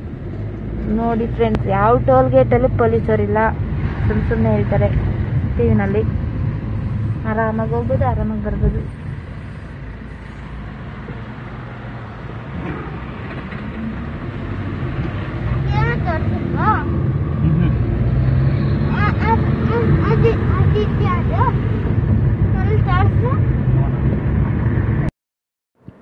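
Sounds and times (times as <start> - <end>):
car engine and road noise: 0.0 - 25.1
voices: 0.8 - 6.1, 7.2 - 8.9, 15.4 - 17.9, 18.8 - 21.8, 22.5 - 24.0.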